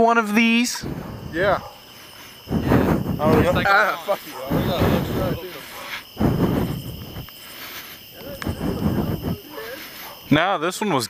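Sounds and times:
crickets chirring: 0:00.0 - 0:11.0
loud voices: 0:00.6 - 0:10.4.

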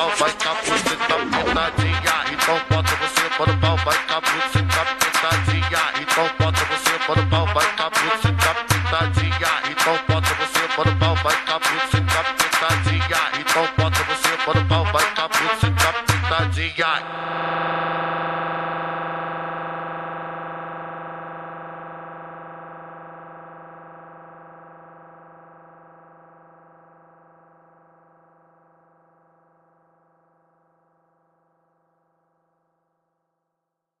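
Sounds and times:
sustained synthesizer chord: 0:17.0 - 0:30.6.

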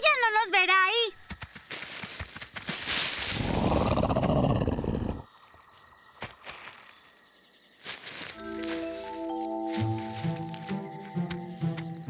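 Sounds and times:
cartoon dinosaur roar: 0:03.4 - 0:05.2
soft sustained music notes: 0:08.4 - 0:12.0.

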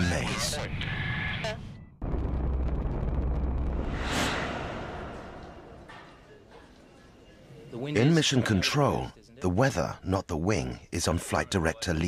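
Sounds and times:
deep rumble with whoosh: 0:02.0 - 0:06.2.

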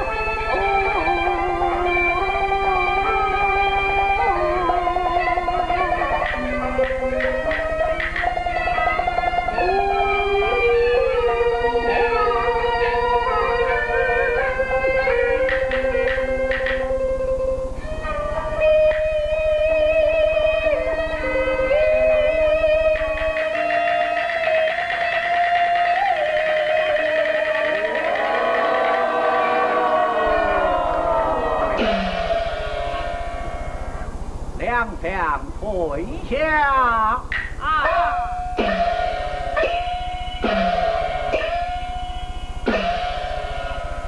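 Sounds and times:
string accompaniment: 0:00.0 - 0:36.2
opera singing long held notes: 0:25.4 - 0:33.8.

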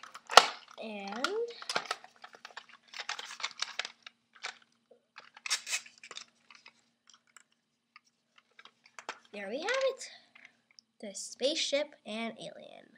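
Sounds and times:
plastic toy parts clicking: 0:00.0 - 0:10.6.

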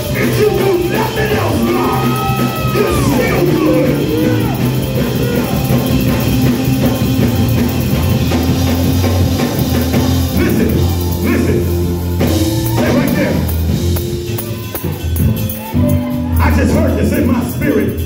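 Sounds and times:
bass notes: 0:00.0 - 0:18.0
drum kit: 0:00.0 - 0:18.0
live church band music: 0:00.0 - 0:18.0
voices: 0:00.2 - 0:05.7.

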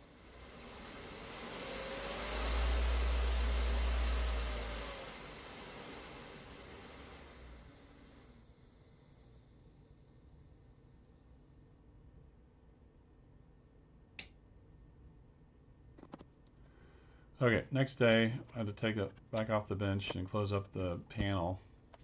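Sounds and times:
deep hum: 0:00.0 - 0:07.9
electric motor whining: 0:00.0 - 0:08.7.

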